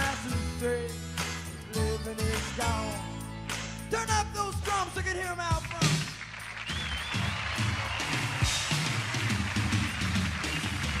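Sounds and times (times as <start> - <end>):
drum kit steady beat: 0.0 - 11.0.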